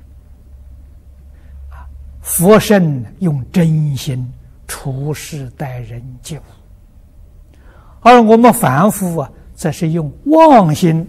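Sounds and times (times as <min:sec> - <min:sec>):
faint low hum: 0:00.0 - 0:11.0
elderly man speaking: 0:02.2 - 0:06.6, 0:08.0 - 0:11.0.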